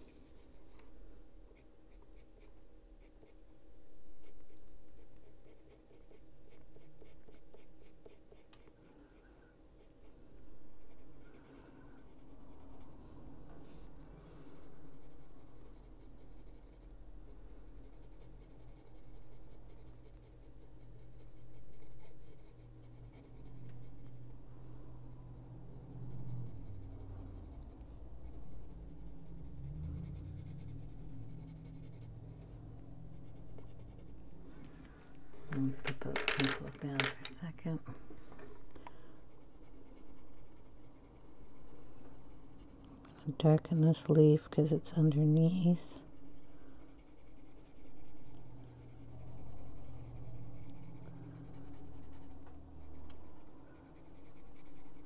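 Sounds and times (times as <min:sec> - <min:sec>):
pencil scratching on paper: 0:00.0 - 0:00.9, 0:01.5 - 0:34.4, 0:35.2 - 0:37.9, 0:39.3 - 0:55.0
low hum: 0:08.6 - 0:55.0.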